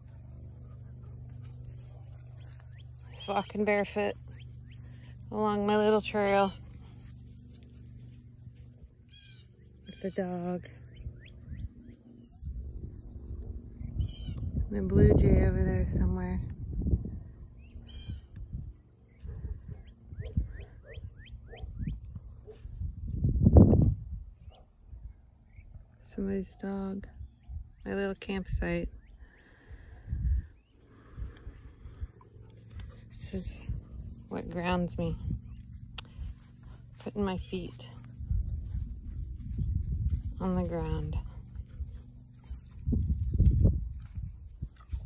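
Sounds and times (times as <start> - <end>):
steady low hum: 0.0 - 45.0
distant dog barking: 19.2 - 21.8, 22.4 - 22.7.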